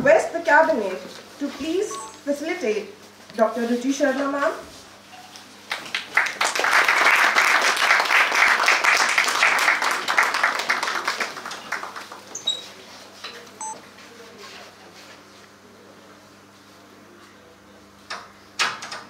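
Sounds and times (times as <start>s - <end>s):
audience applauding: 5.7s - 12.3s.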